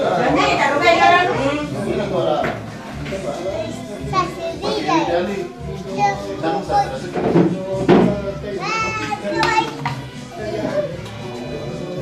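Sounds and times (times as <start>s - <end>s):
music playing: 0.0s - 12.0s
children chattering: 3.4s - 7.1s, 8.5s - 12.0s.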